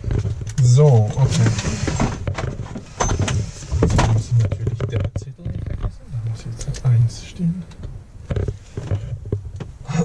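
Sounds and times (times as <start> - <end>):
man speaking indistinctly: 0.6 - 2.0, 3.9 - 7.5.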